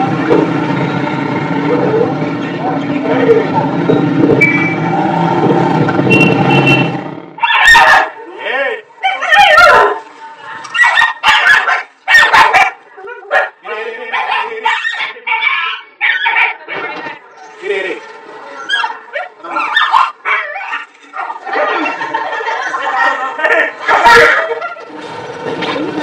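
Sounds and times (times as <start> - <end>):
street noise: 0.0 - 26.0
puppy whimpering and yelping: 18.6 - 21.3.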